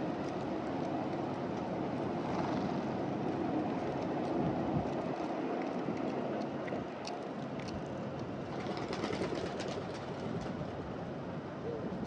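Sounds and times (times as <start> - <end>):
doves pecking clicks: 3.3 - 10.5.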